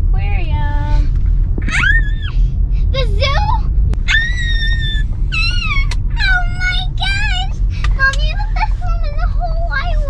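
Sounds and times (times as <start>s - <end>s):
car interior rumble: 0.0s - 10.0s
girl squealing: 1.6s - 2.4s, 4.0s - 6.0s.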